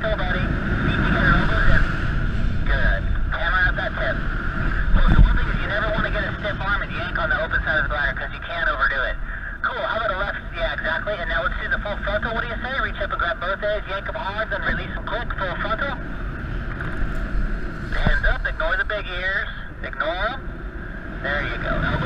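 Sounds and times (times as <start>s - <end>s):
voice over two-way radio: 0.0s - 2.0s, 2.6s - 16.1s, 17.9s - 20.5s, 21.1s - 22.0s
wind rumble on microphone: 0.0s - 22.0s.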